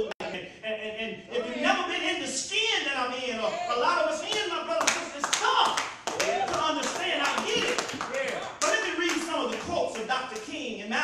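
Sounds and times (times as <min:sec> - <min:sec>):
man speaking: 0:00.0 - 0:11.0
sharp hand claps: 0:04.3 - 0:10.5.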